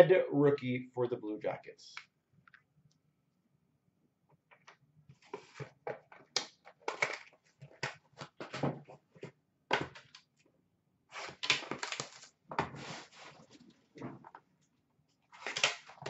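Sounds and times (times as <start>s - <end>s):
cardboard packaging rustling: 11.2s - 14.1s.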